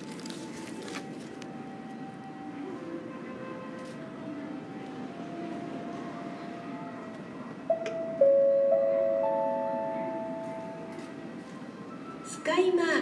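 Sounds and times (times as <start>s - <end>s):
low hum of terminal hall: 0.0s - 13.0s
electronic public address chime: 7.7s - 10.9s.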